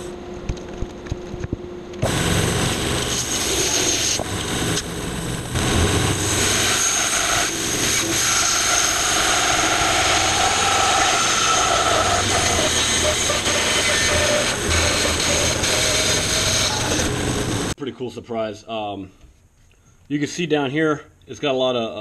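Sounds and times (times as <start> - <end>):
bandsaw cutting log: 2.0 - 17.7.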